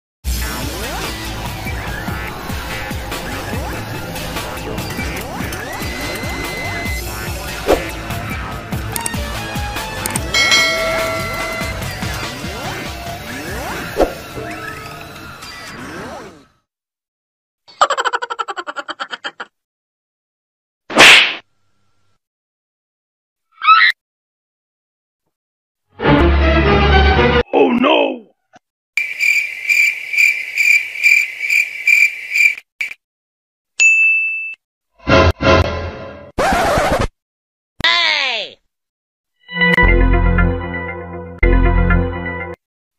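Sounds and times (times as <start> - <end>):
electronic background music: 0.3 - 15.9
bright bell chime: 10.3 - 12.1
crickets chirping: 29.0 - 33.0
short vocal cry: 37.8 - 38.6.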